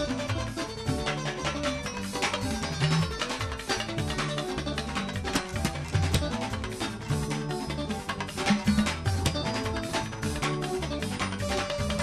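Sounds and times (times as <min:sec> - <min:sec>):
bass: 0:00.0 - 0:12.0
percussion beat: 0:00.0 - 0:12.0.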